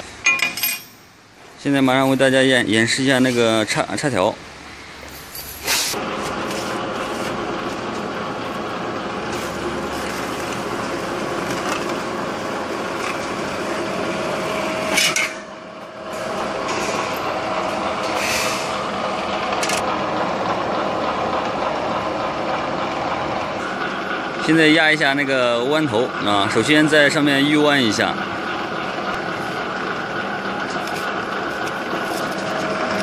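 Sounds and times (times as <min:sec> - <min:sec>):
sharp metallic clank: 0:00.0 - 0:01.3, 0:14.9 - 0:15.5
sheet metal forming machine whirring: 0:05.9 - 0:33.0.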